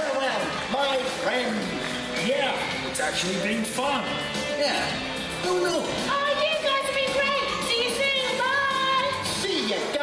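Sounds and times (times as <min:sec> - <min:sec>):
background music: 0:00.0 - 0:10.0
voices speaking: 0:01.6 - 0:10.0.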